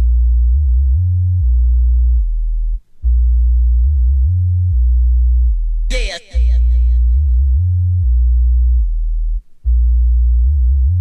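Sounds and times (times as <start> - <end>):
deep sustained sub-bass notes: 0.0 - 11.0.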